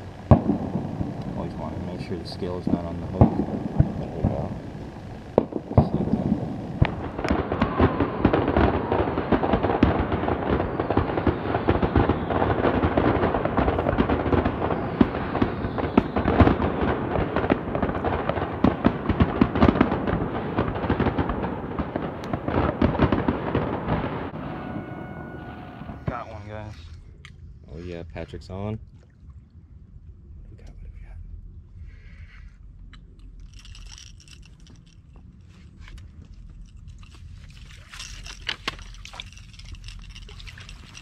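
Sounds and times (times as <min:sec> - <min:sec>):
fireworks bangs and crackles: 0:00.0 - 0:26.4.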